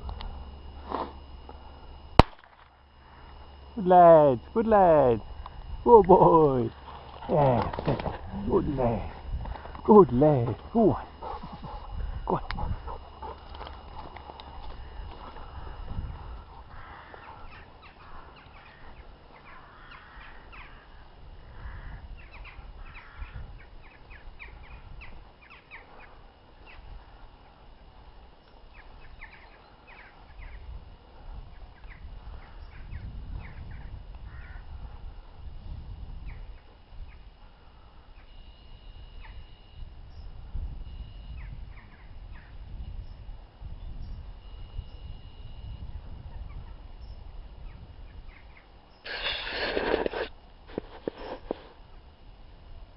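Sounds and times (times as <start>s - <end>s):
birds calling: 0.0s - 34.7s.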